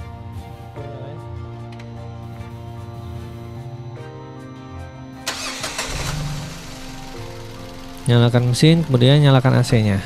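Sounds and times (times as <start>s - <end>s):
background music: 0.0s - 10.0s
car engine starting and idling: 5.2s - 10.0s.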